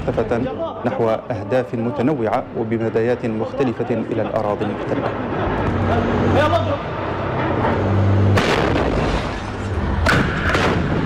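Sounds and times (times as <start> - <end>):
loud bang with echo: 8.3 - 9.4, 10.0 - 11.0.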